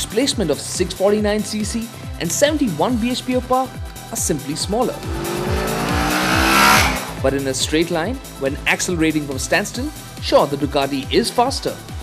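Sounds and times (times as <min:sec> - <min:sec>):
background music with steady beat: 0:00.0 - 0:12.0
motorcycle engine accelerating: 0:04.7 - 0:07.3.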